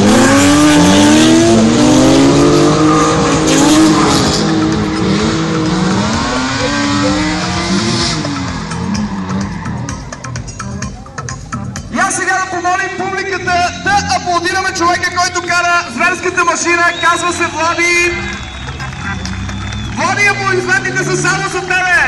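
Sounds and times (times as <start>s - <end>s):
car engine revving: 0.0s - 10.9s, 12.7s - 22.0s.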